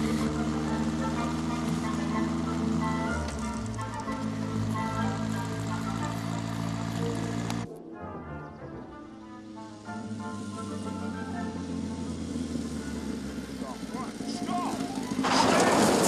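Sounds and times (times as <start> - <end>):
motorcycle engine running: 0.0 - 7.7, 9.4 - 16.0
orchestral music: 0.0 - 13.5.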